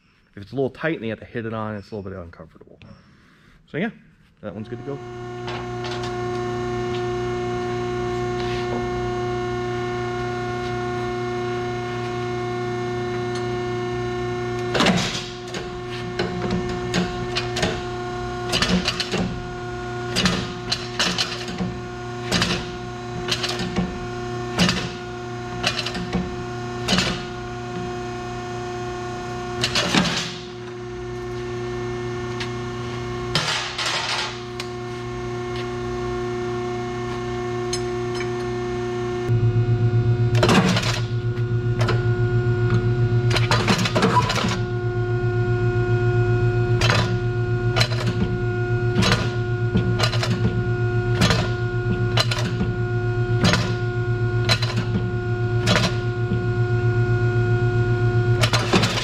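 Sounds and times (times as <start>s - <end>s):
machine hum: 2.8s - 59.0s.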